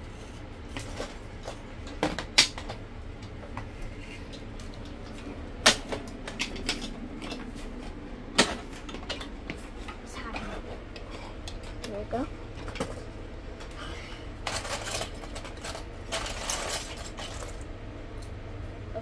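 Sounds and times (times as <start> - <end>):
plastic bricks rattling: 14.4 - 17.7.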